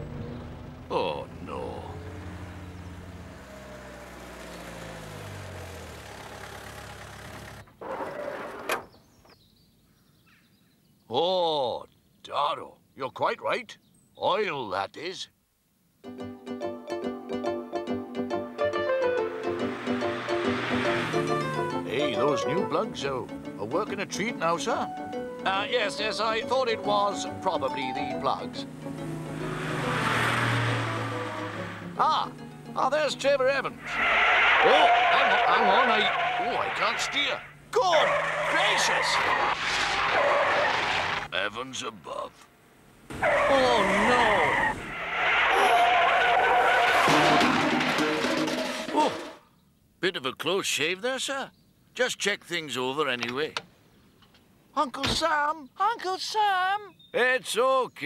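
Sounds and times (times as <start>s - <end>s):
minibus engine running: 0.0s - 8.0s, 18.3s - 38.9s, 42.5s - 44.9s
road noise rushing: 0.0s - 8.8s, 18.8s - 24.6s, 25.5s - 49.4s
background music: 16.0s - 33.9s.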